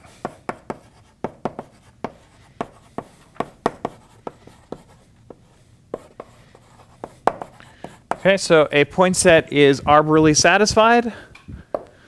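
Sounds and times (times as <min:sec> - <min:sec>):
chalk tapping on a blackboard: 0:00.0 - 0:08.4.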